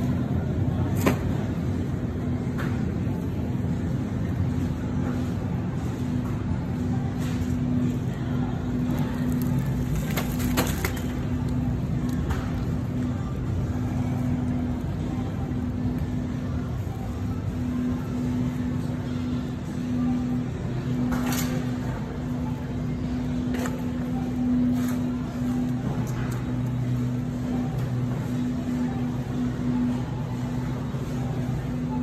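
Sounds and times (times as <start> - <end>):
steady hum: 0.0 - 32.0
shopping cart wheels rumbling on tiles: 2.8 - 19.0.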